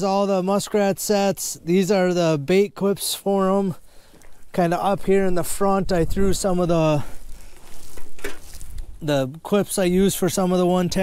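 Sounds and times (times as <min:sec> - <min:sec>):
cables and traps rustling: 0:06.0 - 0:09.0.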